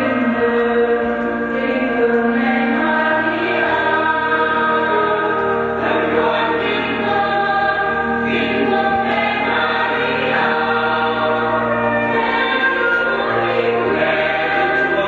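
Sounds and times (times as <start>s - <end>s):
mixed choir singing a hymn: 0.0s - 15.0s.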